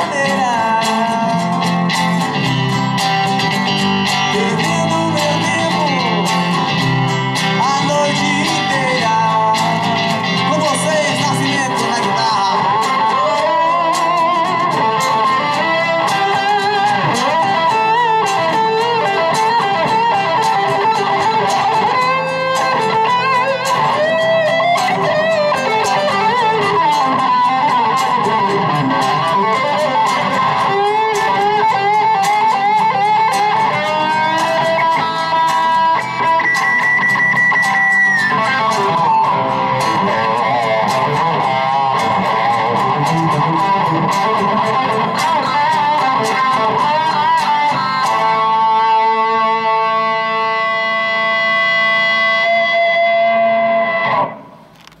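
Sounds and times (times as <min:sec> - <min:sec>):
electric guitar lead: 0:00.0 - 0:55.0
strummed acoustic guitar: 0:00.0 - 0:55.0.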